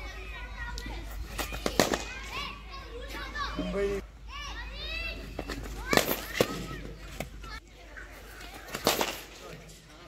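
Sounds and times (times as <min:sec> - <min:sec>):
voices in background: 0:00.0 - 0:10.0.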